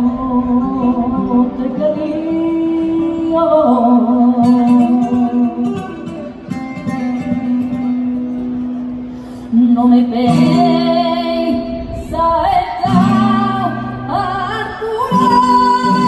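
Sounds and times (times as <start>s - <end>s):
flamenco guitar: 0.0s - 16.0s.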